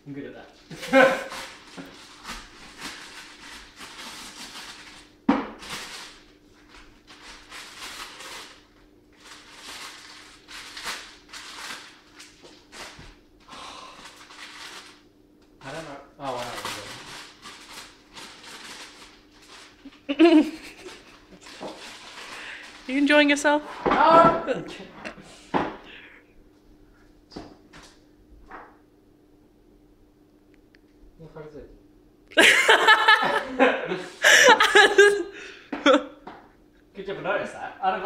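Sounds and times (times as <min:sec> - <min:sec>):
person laughing: 0:00.7 - 0:01.5, 0:19.9 - 0:21.2, 0:32.4 - 0:36.2
newspaper rustling and tearing: 0:01.2 - 0:13.0, 0:14.0 - 0:15.0, 0:16.2 - 0:20.0, 0:20.6 - 0:23.0
faint steady hum: 0:04.8 - 0:38.0.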